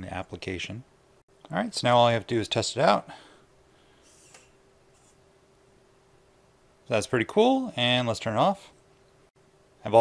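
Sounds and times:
soft steady hum: 0.0 - 10.0.

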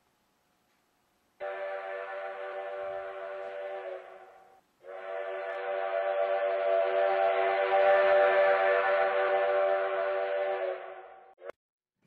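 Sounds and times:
steam locomotive whistle blast: 1.4 - 11.5.

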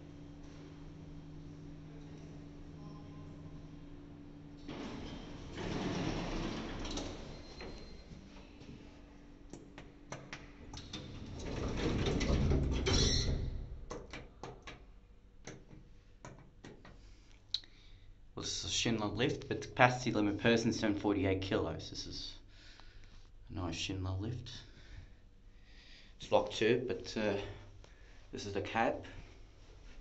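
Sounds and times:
steady low hum: 0.0 - 12.6
lift doors sliding: 3.7 - 8.3, 10.7 - 13.6.

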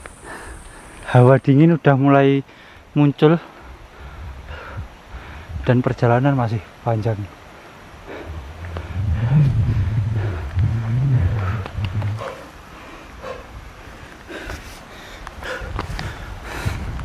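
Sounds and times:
person breathing hard: 0.1 - 1.1, 2.5 - 2.9, 3.5 - 5.6, 7.5 - 17.0
low rumble on microphone: 7.9 - 14.4.

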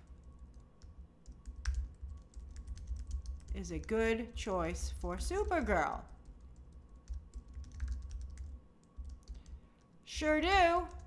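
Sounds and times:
computer keyboard typing: 0.1 - 3.9, 5.4 - 9.6.

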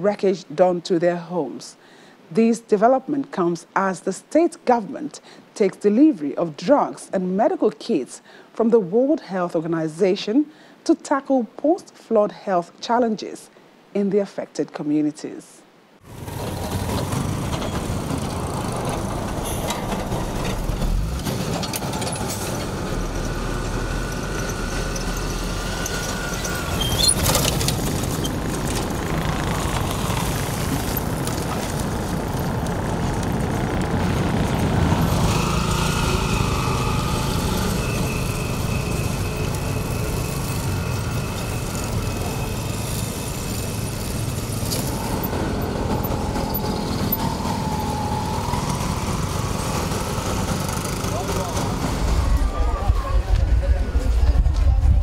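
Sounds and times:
motorcycles passing: 16.0 - 54.1
cars passing: 16.1 - 54.5
auto-rickshaws running: 16.1 - 54.7
high engine whine: 16.1 - 55.0.

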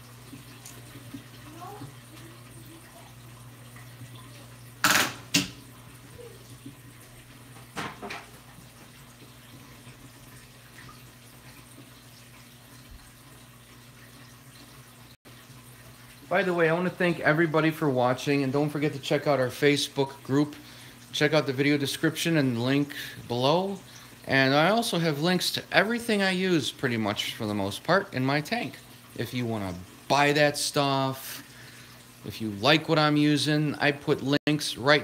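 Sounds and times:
aquarium water trickling: 0.0 - 35.0
low electrical hum: 0.0 - 35.0.

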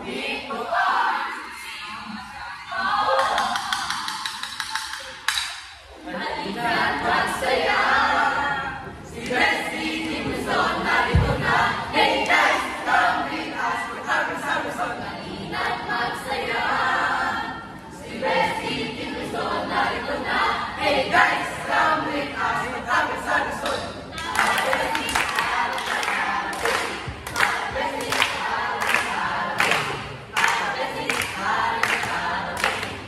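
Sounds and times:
group singing in chorus: 0.0 - 33.0
low thud: 11.1 - 11.6.

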